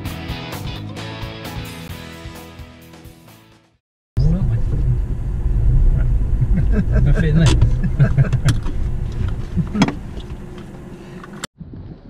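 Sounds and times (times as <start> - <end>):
car engine and tyres rumbling: 4.2 - 11.5
sharp clicks and knocks: 7.4 - 11.5.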